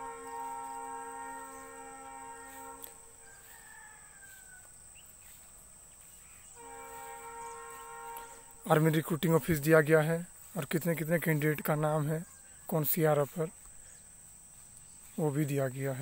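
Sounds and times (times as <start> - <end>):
thin high whine: 0.0 - 3.3
faint horn-like tone: 0.0 - 4.6, 6.2 - 9.7.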